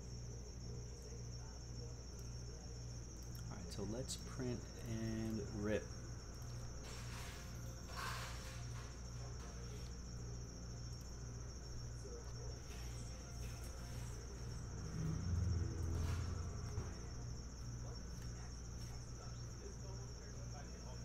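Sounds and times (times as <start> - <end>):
pulsing low hum: 0.0 - 21.0
high-pitched electrical whine: 1.8 - 21.0.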